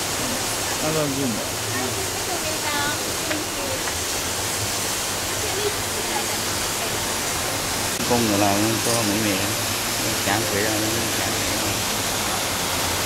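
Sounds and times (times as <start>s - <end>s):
indoor waterfall rushing: 0.0s - 13.0s.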